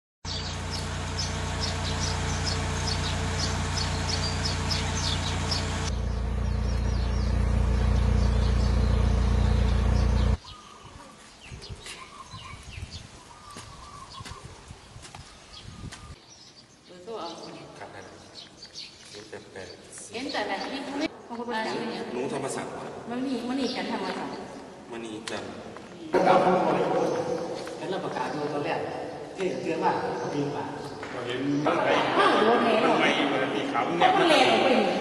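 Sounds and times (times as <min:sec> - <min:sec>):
small birds chirping: 0:00.2 - 0:22.4, 0:26.8 - 0:31.7
loud low rumble: 0:00.5 - 0:10.4.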